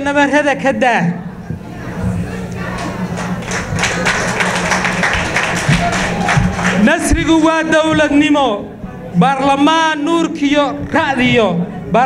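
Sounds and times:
steady low hum: 0.0 - 12.0
audience clapping and cheering: 2.5 - 7.5.

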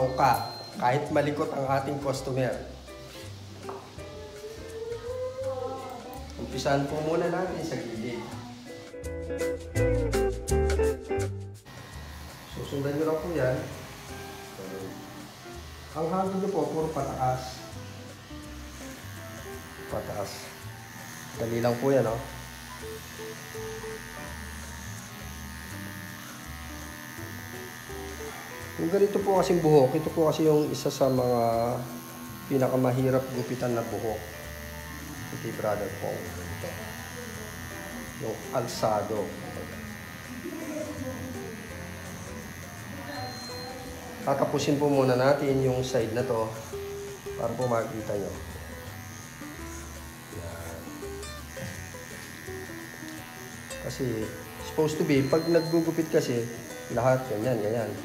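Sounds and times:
electric hair clipper buzzing: 0.0 - 10.5, 11.6 - 58.0
soft background music: 0.0 - 58.0.

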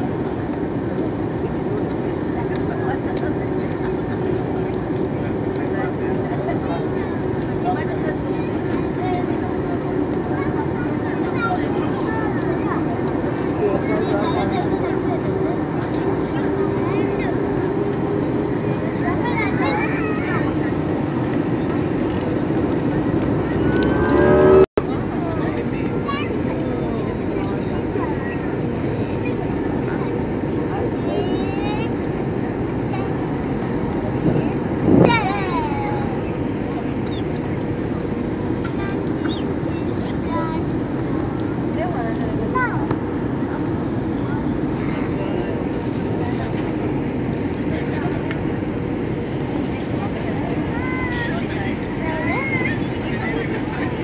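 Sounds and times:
faint voices: 0.0 - 54.0
jet airliner cabin noise: 0.0 - 54.0
loud rising sound: 23.3 - 24.7.

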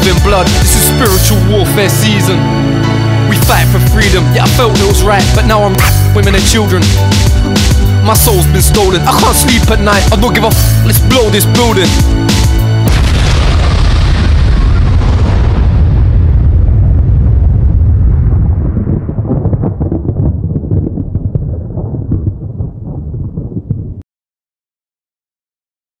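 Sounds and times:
explosion rumble: 0.0 - 24.0
scattered crackles: 12.9 - 24.0.

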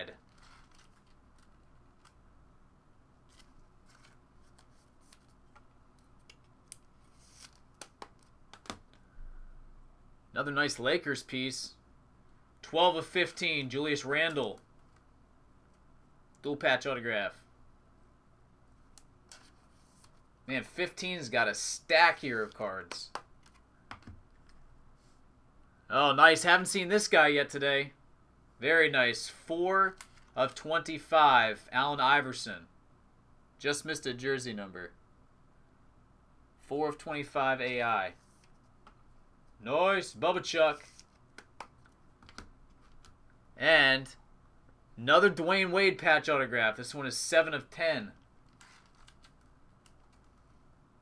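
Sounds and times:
trading cards clicking and rustling: 0.2 - 2.2, 3.3 - 9.0, 22.2 - 24.6, 29.9 - 30.6, 40.8 - 43.2, 48.4 - 50.6.

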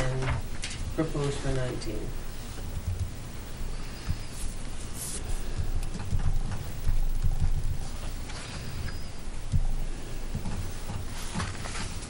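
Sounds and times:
papers and hands on table: 2.4 - 12.0.

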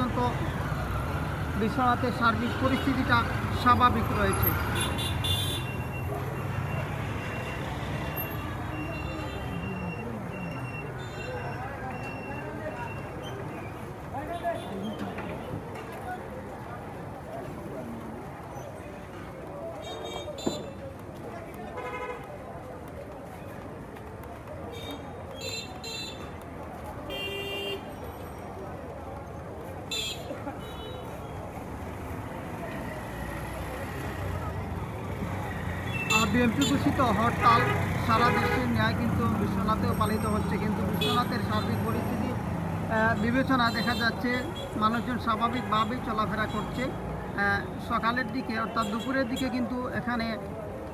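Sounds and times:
motorcycle engines passing: 0.0 - 14.3, 27.8 - 47.9
people's voices: 5.8 - 50.9.

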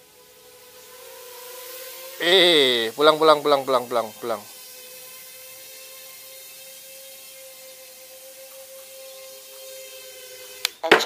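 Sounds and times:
drone motors whining: 0.0 - 11.0.

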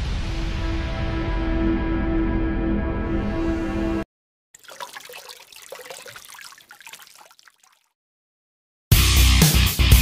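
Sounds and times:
water trickling and bubbling: 4.6 - 8.0.

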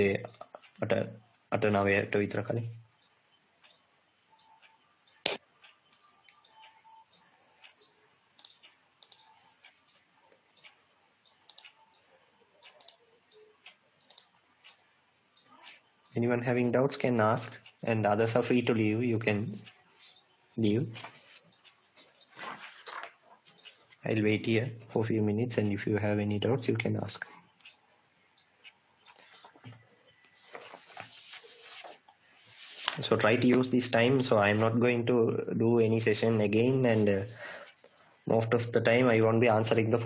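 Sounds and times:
faint sharp clicks: 4.4 - 11.8, 12.6 - 14.8
faint rubbing and rustling: 20.9 - 24.0, 29.1 - 34.1.

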